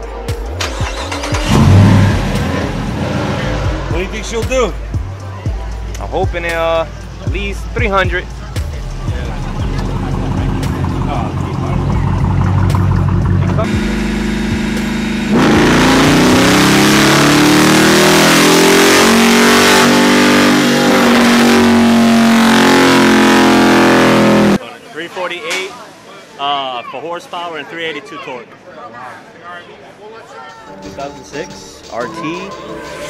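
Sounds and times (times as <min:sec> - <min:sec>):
car engine revving on dynamometer: 0:00.6 - 0:04.5, 0:09.6 - 0:24.6.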